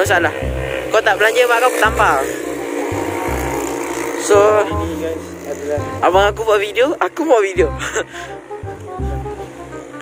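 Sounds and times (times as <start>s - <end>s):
background music with held notes: 0.0s - 10.0s
pulsing low part: 1.8s - 10.0s.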